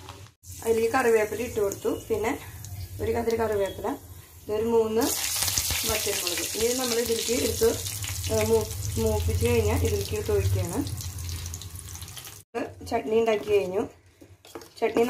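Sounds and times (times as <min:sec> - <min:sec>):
hot oil sizzling: 0:00.0 - 0:12.5.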